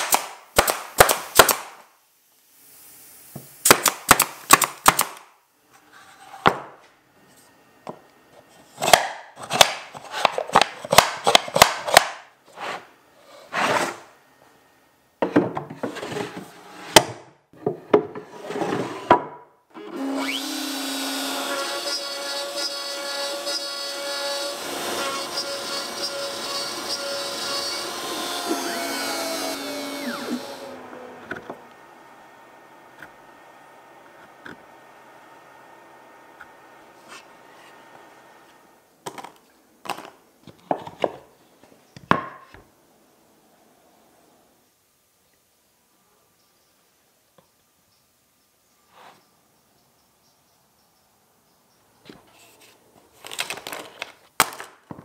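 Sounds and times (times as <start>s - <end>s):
router spindle cutting plywood: 19.8s - 38.6s.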